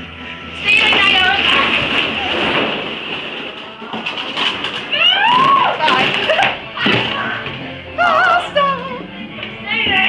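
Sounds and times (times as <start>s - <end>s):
plastic balls clattering: 0.5s - 8.1s.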